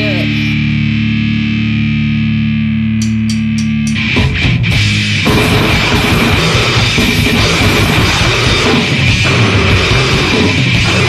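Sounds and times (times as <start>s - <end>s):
distorted electric guitar chord: 0.0s - 11.0s.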